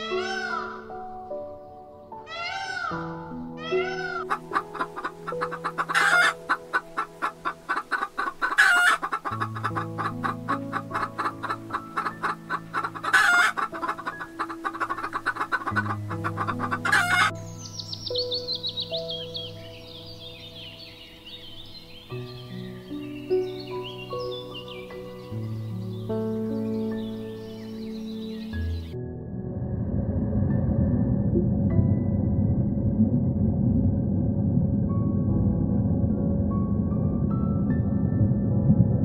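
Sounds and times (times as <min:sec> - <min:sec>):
sharp chicken calls: 0:00.0 - 0:00.8, 0:02.3 - 0:03.0, 0:03.6 - 0:17.3
soft background music: 0:00.0 - 0:39.0
chickens clucking: 0:03.8 - 0:17.3.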